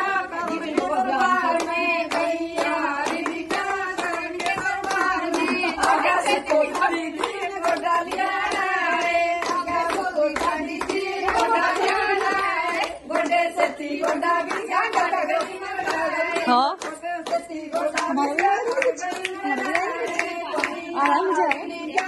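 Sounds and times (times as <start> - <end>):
rhythmic hand clapping: 0.0 - 22.0
women singing together: 0.0 - 22.0.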